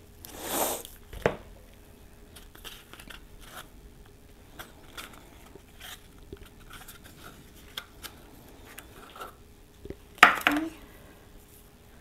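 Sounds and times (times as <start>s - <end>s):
cardboard tube crinkling: 2.3s - 10.7s.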